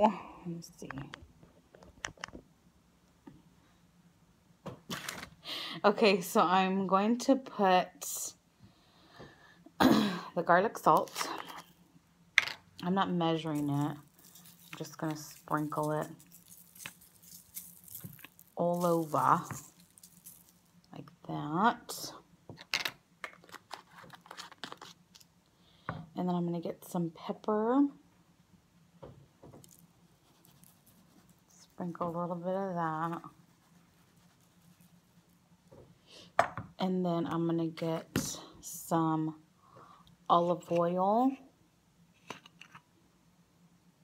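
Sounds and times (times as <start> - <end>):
paper and vegetables crinkling: 13.5 - 20.8, 23.4 - 25.3.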